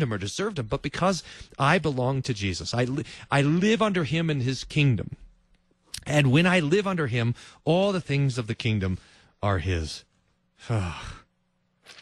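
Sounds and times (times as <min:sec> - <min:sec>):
man sighing: 0:10.6 - 0:11.3.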